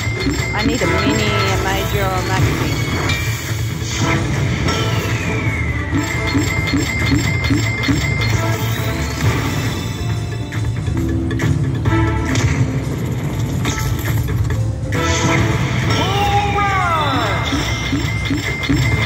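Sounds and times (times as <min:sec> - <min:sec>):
slot machine music: 0:00.0 - 0:19.0.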